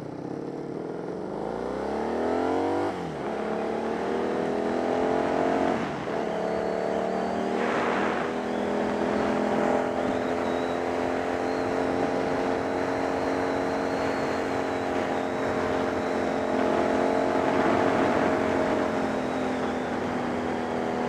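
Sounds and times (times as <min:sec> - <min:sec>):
motorcycle engine accelerating: 0:00.0 - 0:21.0
rush of noise: 0:05.6 - 0:10.2, 0:13.6 - 0:20.8.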